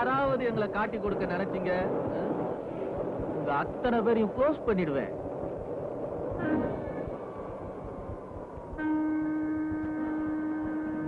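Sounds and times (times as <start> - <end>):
faint hiss and rumble: 0.0 - 11.0
long held musical note: 8.7 - 11.0.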